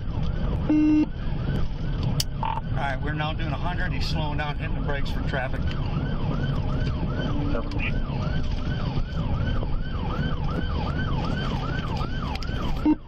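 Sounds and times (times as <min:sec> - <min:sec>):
police siren yelping: 0:00.0 - 0:03.7, 0:04.4 - 0:13.0
car engine and tyre noise: 0:00.0 - 0:13.0.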